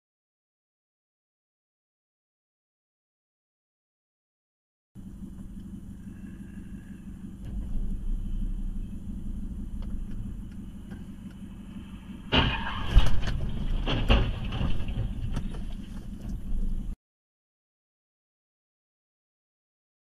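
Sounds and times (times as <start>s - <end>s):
car engine idling: 5.0s - 17.0s
car crash: 6.2s - 17.0s
sharp bangs: 7.1s - 17.0s.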